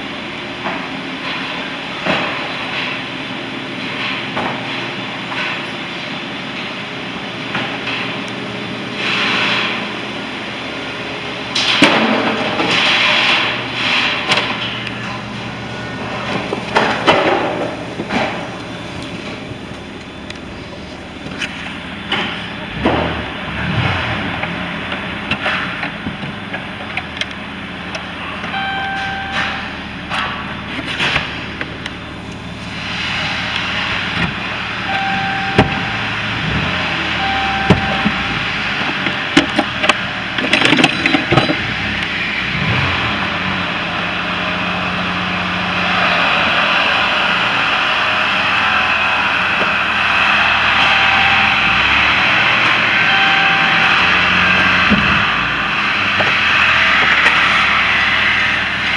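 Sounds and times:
engine and road noise: 0:00.0 - 0:58.9
short beeping tones: 0:28.5 - 0:29.9, 0:34.9 - 0:36.1, 0:37.2 - 0:38.5, 0:50.7 - 0:52.2, 0:53.0 - 0:54.5.

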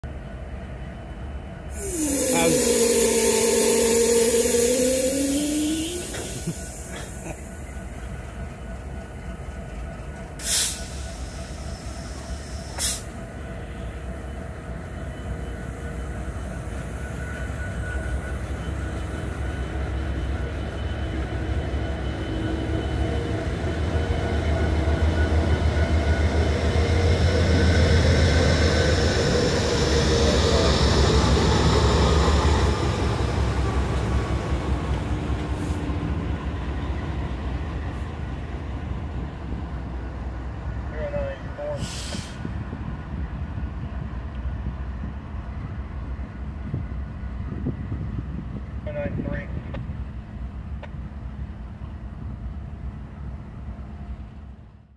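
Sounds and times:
diesel locomotives rumbling past: 0:00.0 - 0:54.9.

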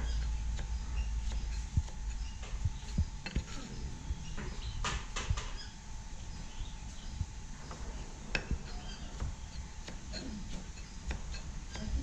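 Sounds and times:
knife chopping on wooden block: 0:00.0 - 0:03.8, 0:08.3 - 0:12.0.

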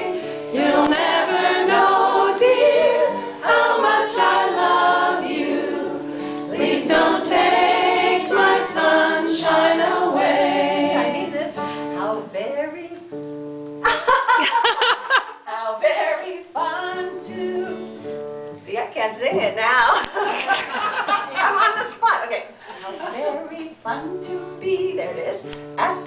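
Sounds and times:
acoustic guitar chords: 0:00.0 - 0:18.8
woman singing: 0:06.6 - 0:13.1, 0:15.5 - 0:18.0, 0:23.2 - 0:26.0.

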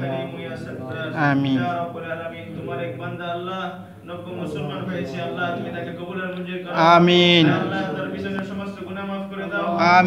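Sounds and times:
drawn-out amin responses: 0:00.0 - 0:10.0
men chanting a prayer: 0:00.0 - 0:10.0.

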